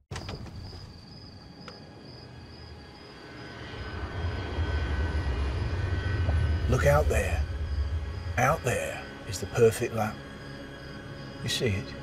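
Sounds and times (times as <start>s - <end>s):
aircraft engines rumbling and whining: 1.6s - 12.0s.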